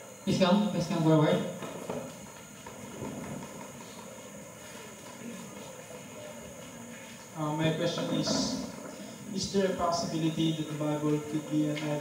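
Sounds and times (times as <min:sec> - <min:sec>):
crowded hall drone: 0:00.0 - 0:12.0.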